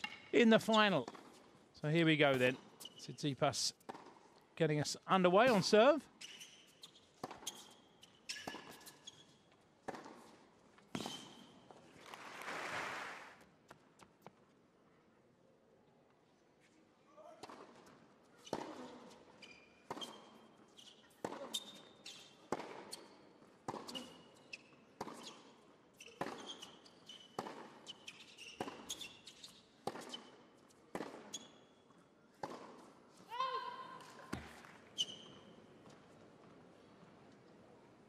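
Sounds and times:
shoe squeaks: 2.3s - 3.3s, 5.4s - 9.5s, 10.9s - 11.7s, 18.3s - 30.4s, 31.2s - 31.9s, 34.9s - 35.7s
racket hitting tennis ball: 9.8s - 11.5s, 18.4s - 18.9s, 21.2s - 21.9s, 22.5s - 24.2s, 25.0s - 25.3s, 26.1s - 26.7s, 27.3s - 29.1s, 29.8s - 30.3s, 30.9s - 31.3s, 32.4s - 32.9s.

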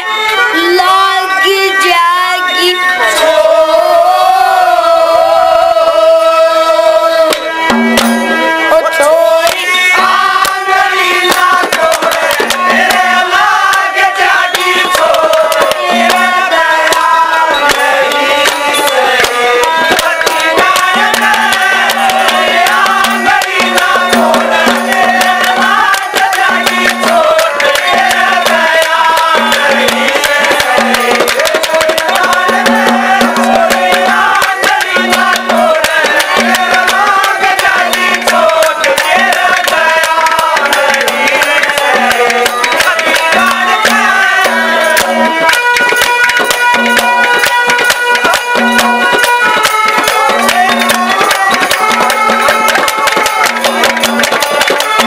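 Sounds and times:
fast hand-drum beats: 7.3s - 55.0s.

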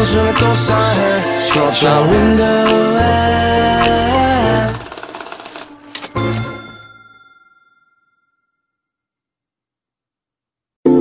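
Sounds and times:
hip-hop beat with chords and bass: 0.0s - 4.7s
fast ticking: 3.8s - 5.7s.

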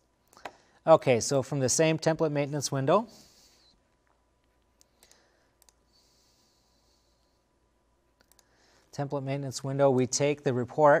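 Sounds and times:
faint room hiss: 0.0s - 11.0s
computer mouse clicks: 4.0s - 6.1s, 8.2s - 8.5s.

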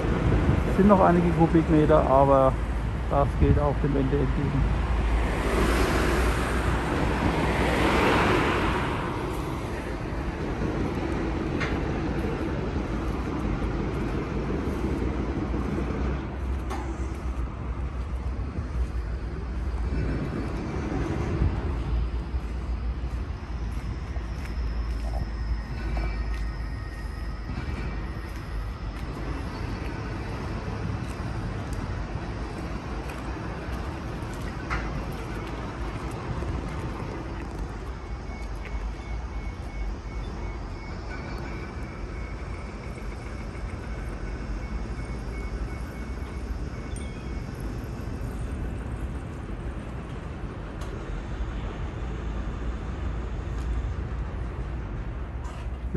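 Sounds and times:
city traffic rumble: 0.0s - 55.9s
rail noise: 0.0s - 55.9s.

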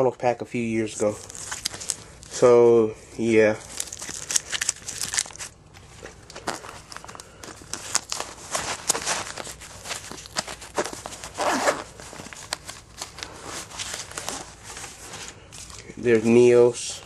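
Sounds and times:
plastic card sleeves rustling: 0.8s - 2.5s, 3.2s - 16.8s.

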